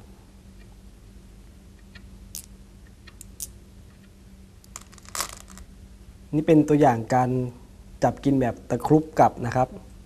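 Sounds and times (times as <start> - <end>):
stones clicking on wooden board: 4.7 - 5.6.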